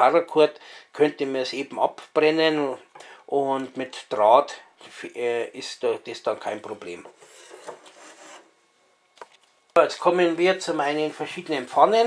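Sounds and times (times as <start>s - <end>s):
wooden spoon scraping on wood: 7.0s - 8.5s.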